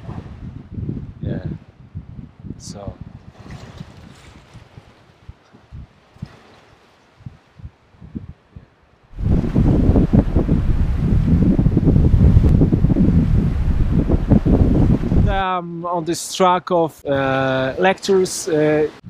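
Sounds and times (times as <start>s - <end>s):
wind buffeting microphone: 0.0s - 15.5s.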